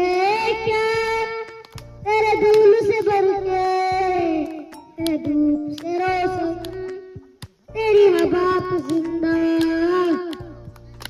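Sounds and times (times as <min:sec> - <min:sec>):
boy singing into microphone: 0:00.0 - 0:10.6.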